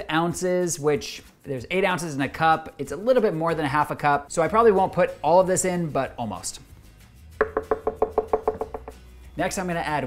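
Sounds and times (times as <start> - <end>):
spoon tapping plastic jar: 7.4 - 9.0.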